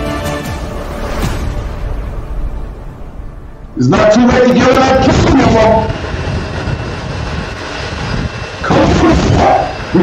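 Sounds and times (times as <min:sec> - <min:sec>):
jet engines droning: 0:00.0 - 0:10.0.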